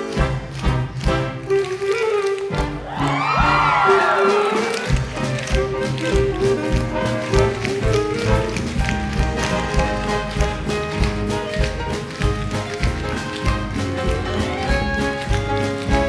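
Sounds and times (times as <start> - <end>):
orchestral show tune: 0.0 - 16.0
tap shoes on wooden stage: 0.0 - 16.0.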